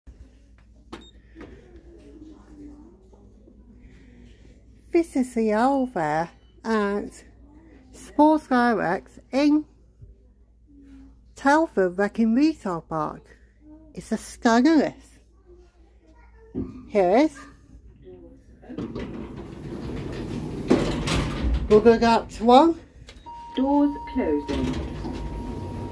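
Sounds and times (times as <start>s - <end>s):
lift doors rumbling and rattling: 18.7s - 25.9s.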